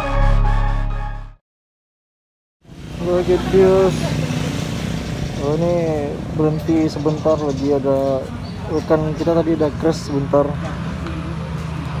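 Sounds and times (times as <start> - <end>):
man's voice: 5.4 - 10.6.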